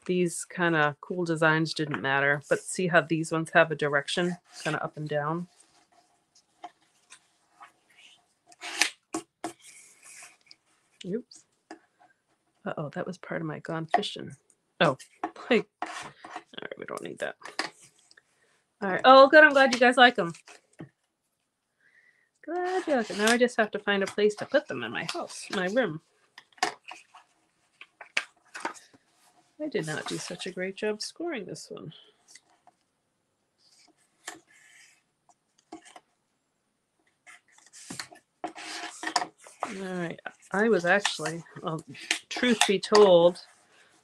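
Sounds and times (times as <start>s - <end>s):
paper rustling and scraping: 4.2s - 11.0s, 14.8s - 16.6s, 22.6s - 30.5s, 37.2s - 44.0s.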